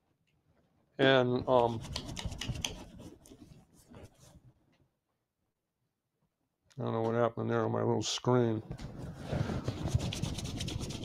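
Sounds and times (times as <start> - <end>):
hands rubbing together: 1.5 - 4.4, 9.0 - 11.0.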